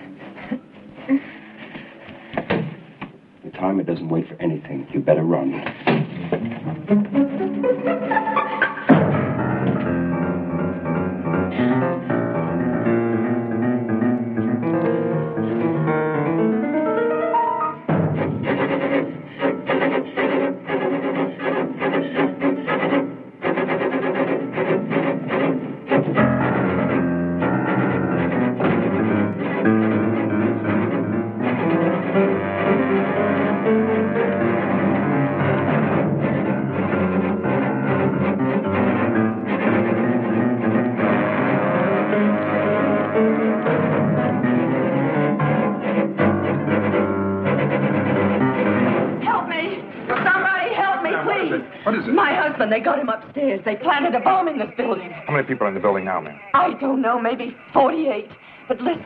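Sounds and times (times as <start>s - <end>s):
orchestral film music: 5.9s - 49.9s.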